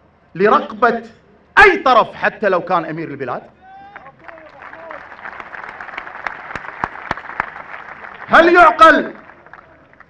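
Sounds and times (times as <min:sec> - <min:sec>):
crowd applauding: 0:03.9 - 0:10.0
loud close claps: 0:03.9 - 0:10.0.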